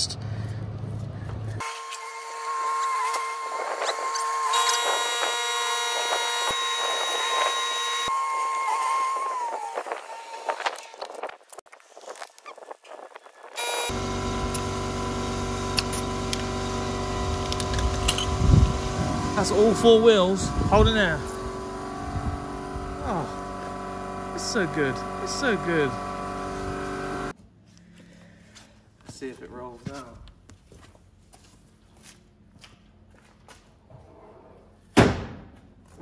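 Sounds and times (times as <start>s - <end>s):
electric tyre inflator humming: 1.6s - 10.8s, 13.6s - 27.4s.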